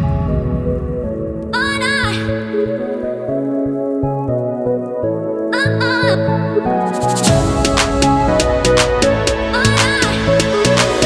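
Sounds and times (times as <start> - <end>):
electronic drum beat: 7.0 - 11.0.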